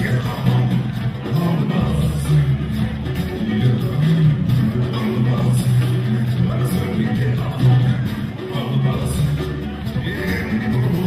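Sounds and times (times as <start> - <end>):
live funk band: 0.0 - 11.0.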